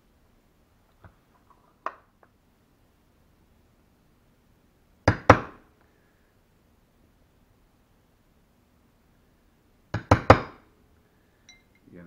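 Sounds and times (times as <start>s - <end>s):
tools clinking on tabletop: 11.5s - 11.9s.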